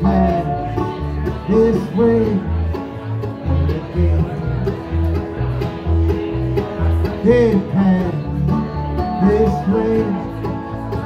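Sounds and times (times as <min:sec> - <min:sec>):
acoustic guitar: 0:00.0 - 0:11.0
banjo picking: 0:00.0 - 0:11.0
mandolin: 0:00.0 - 0:11.0.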